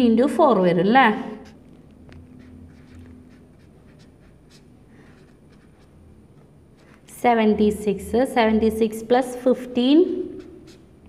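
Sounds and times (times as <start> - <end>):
marker scratching on paper: 1.2 - 7.7, 9.8 - 11.0.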